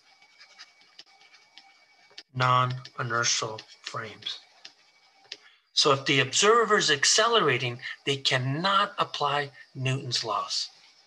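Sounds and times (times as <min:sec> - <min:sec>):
stylus scratching on tablet: 0:00.0 - 0:11.0.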